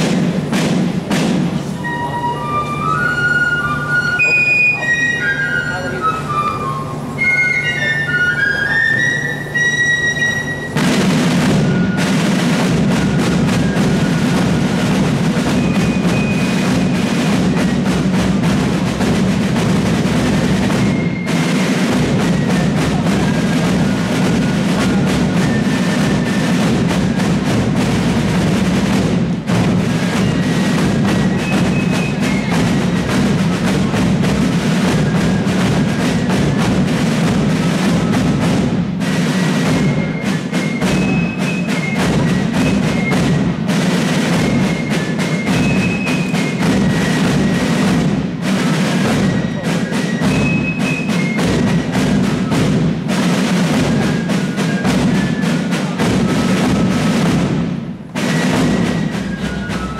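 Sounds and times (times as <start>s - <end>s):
rapid snare drumming: 0.0s - 59.9s.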